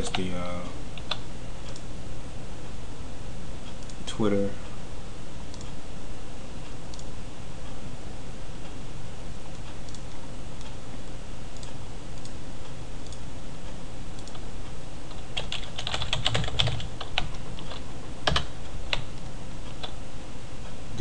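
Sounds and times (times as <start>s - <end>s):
low background hum: 0.0s - 21.0s
keyboard typing: 15.1s - 20.0s.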